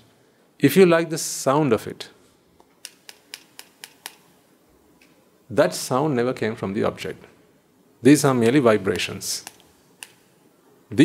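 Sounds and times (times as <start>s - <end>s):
hand-held tube clicking: 2.8s - 4.2s.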